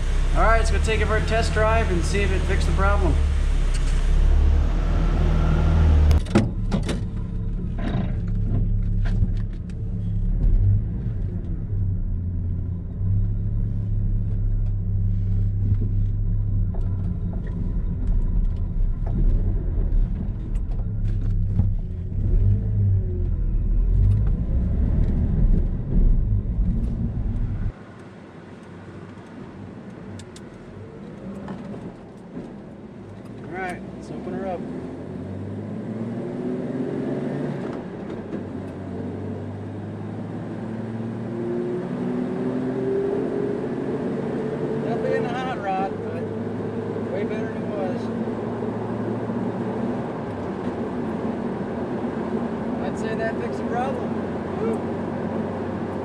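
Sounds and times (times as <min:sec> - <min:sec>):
truck engine running: 0:00.0 - 0:04.8
road rumble: 0:00.0 - 0:56.0.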